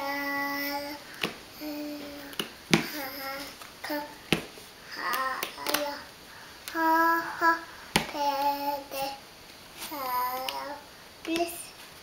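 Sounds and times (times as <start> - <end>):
toddler singing syllables: 0.0 - 1.0, 1.6 - 4.2, 4.9 - 6.1, 6.7 - 9.2, 9.8 - 11.7.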